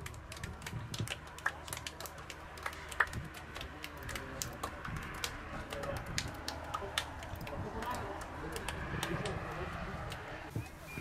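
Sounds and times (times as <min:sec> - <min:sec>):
hands slapping together: 0:00.0 - 0:09.4.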